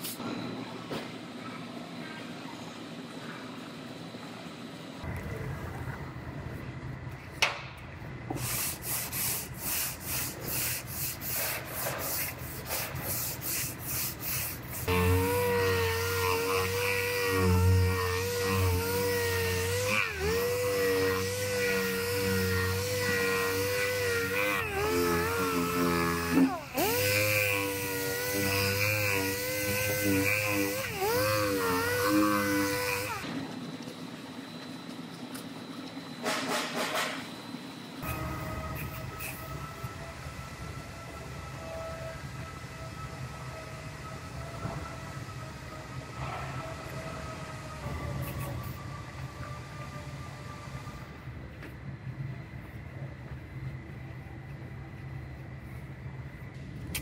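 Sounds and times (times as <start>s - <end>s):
aerosol spray can hissing: 8.4s - 17.6s
hand sanding with sanding block: 8.4s - 33.2s
orbital sander whining: 13.6s - 33.3s.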